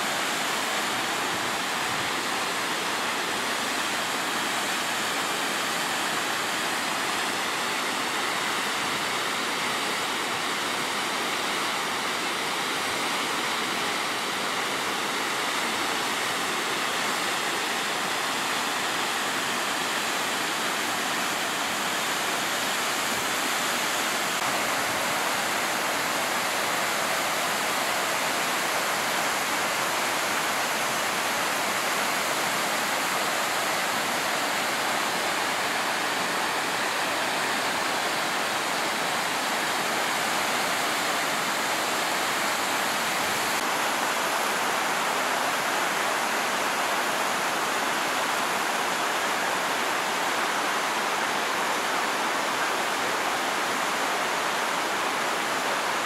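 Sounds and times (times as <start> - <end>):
water rushing down spillway: 0.0 - 56.0.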